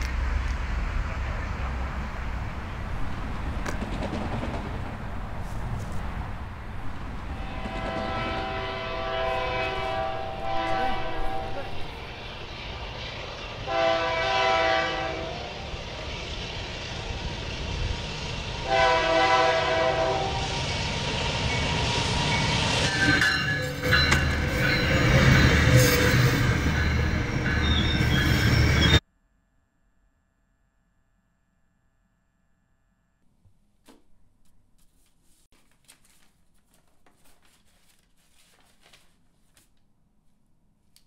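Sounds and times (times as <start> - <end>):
train rumble: 0.0 - 29.0
wheels clattering on rail: 3.2 - 6.0, 20.6 - 28.6
train horn blasts: 7.3 - 12.2, 13.6 - 15.7, 18.6 - 20.6.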